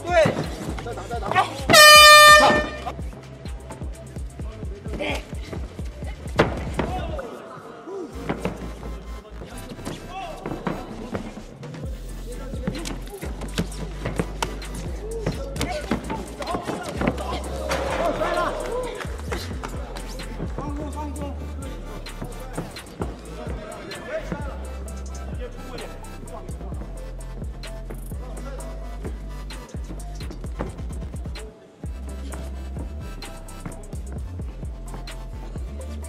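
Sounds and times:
arena noise: 0:00.0 - 0:36.0
background music: 0:00.0 - 0:36.0
loud air horn: 0:01.7 - 0:03.0
people shouting: 0:15.0 - 0:19.1.

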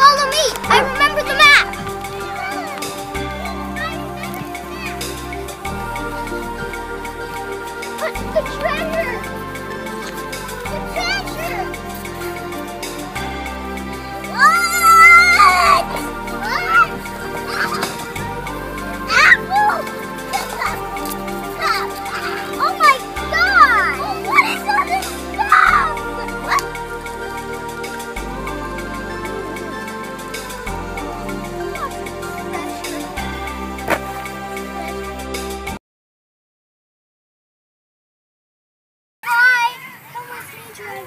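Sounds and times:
children calling and squealing: 0:00.0 - 0:35.7, 0:39.2 - 0:41.0
background music: 0:00.0 - 0:35.8
child squealing: 0:14.3 - 0:17.9, 0:21.6 - 0:26.6.

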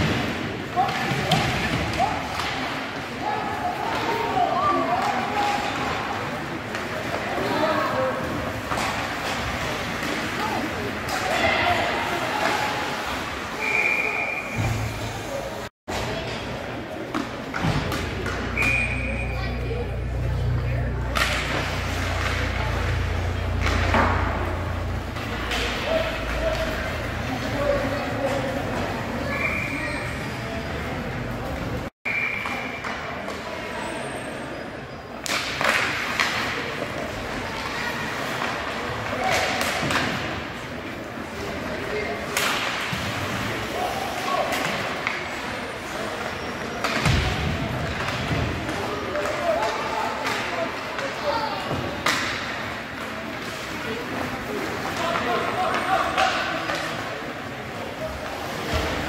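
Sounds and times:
hockey sticks and puck clacking: 0:00.0 - 0:14.0, 0:15.9 - 0:19.4, 0:20.0 - 0:30.0, 0:32.2 - 0:33.7, 0:35.2 - 0:59.0
low arena hum: 0:01.8 - 0:59.0.

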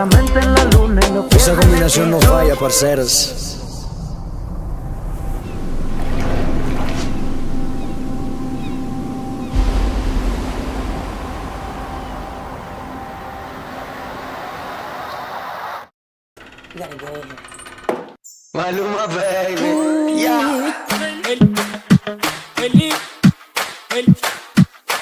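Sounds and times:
steady rushing noise: 0:03.0 - 0:15.2
deep thud: 0:09.5 - 0:13.0.

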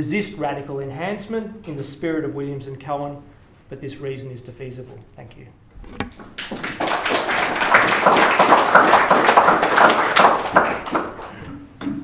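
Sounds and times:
audience applauding: 0:06.2 - 0:11.4.

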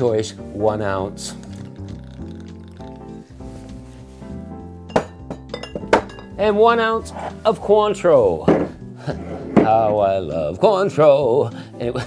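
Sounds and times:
background music: 0:00.0 - 0:12.0
glass bottles clinking: 0:04.9 - 0:06.5.

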